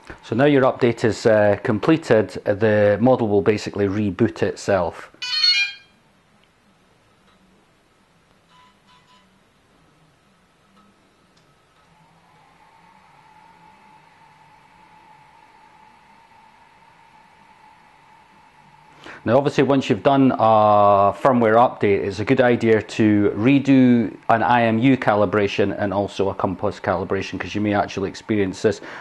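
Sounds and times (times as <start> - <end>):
faint steady whine: 0.0 - 29.0
short electronic chime: 5.2 - 5.9
faint short beeps: 8.5 - 9.4.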